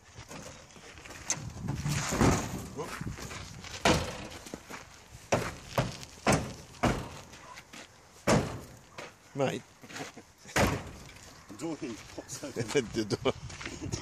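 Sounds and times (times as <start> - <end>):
metal car door banging: 3.8 - 4.3, 5.8 - 7.2, 8.3 - 8.8, 10.6 - 11.0
voices: 8.9 - 14.0
people laughing: 9.8 - 10.6, 12.1 - 14.0.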